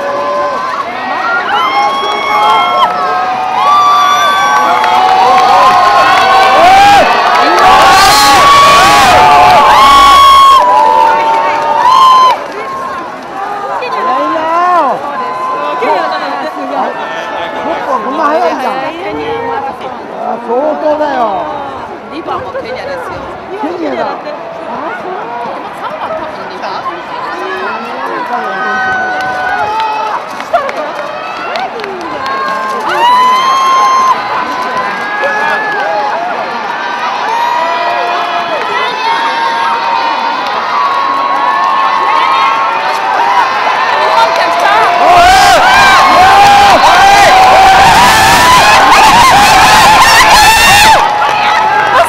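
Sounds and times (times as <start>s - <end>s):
crowd cheering and shouting: 0.0s - 52.0s.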